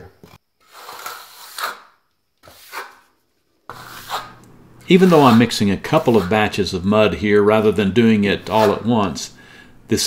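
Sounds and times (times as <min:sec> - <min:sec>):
wooden stick scraping mortar: 0:00.6 - 0:03.1, 0:03.7 - 0:06.8, 0:07.5 - 0:09.0.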